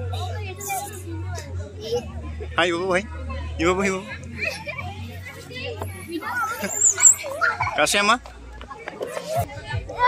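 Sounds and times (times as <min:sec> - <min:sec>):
children calling and chattering: 0:00.0 - 0:10.0.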